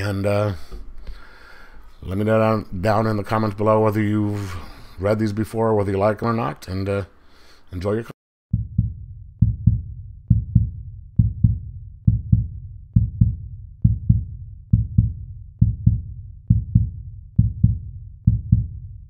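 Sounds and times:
low heartbeat-like double thumps: 8.5 - 19.0.

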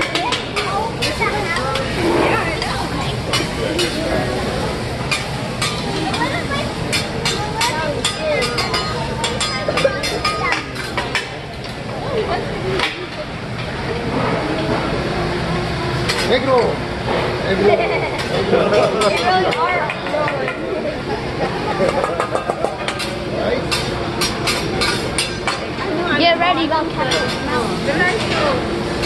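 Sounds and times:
table chatter: 0.0 - 29.0
metal spatula clacking on griddle: 3.3 - 4.0, 5.1 - 6.3, 6.9 - 11.3, 21.8 - 25.6.

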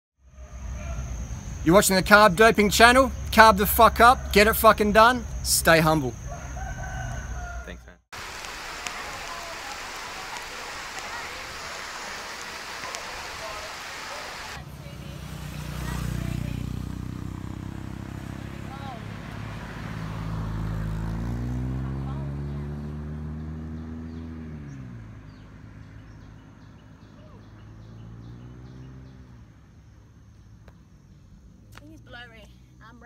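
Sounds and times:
rain and running water: 8.2 - 14.6
vehicle engine speeding up: 10.6 - 30.2.

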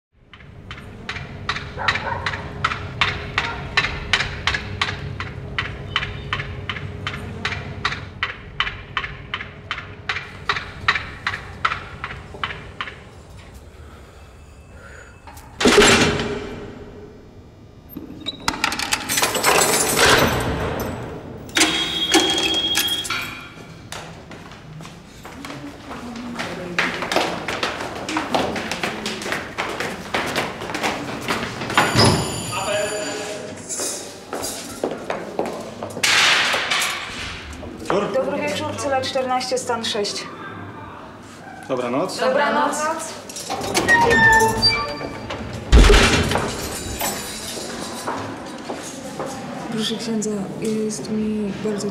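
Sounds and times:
heavy door squealing on hinges: 21.5 - 23.3, 31.8 - 33.4, 43.5 - 46.6
steel door clanking: 43.3 - 47.5.

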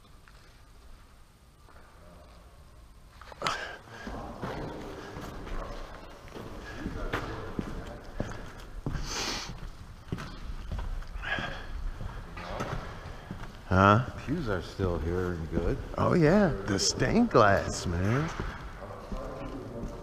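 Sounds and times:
faint voices: 3.4 - 20.0.

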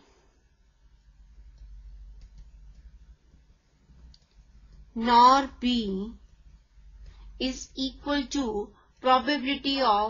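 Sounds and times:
low steady hum: 0.0 - 10.0
stylus tapping graphics tablet: 1.4 - 4.9.

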